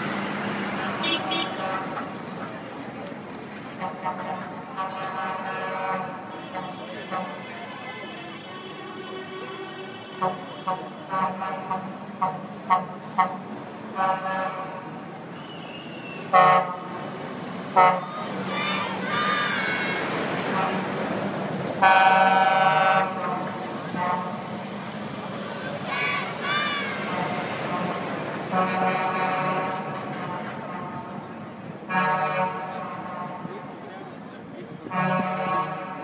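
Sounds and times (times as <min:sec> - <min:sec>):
truck engines humming: 0:00.0 - 0:07.4, 0:10.2 - 0:36.0
truck horns tooting: 0:00.9 - 0:02.1, 0:03.8 - 0:21.0, 0:21.8 - 0:24.6, 0:25.8 - 0:31.2, 0:31.8 - 0:33.6, 0:34.8 - 0:36.0.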